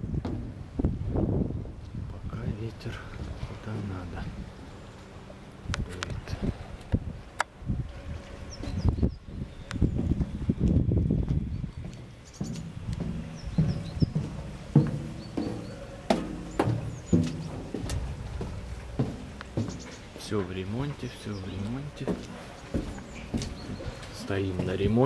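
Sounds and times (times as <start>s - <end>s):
footsteps on steel boat deck: 0.0s - 2.3s, 2.9s - 25.0s.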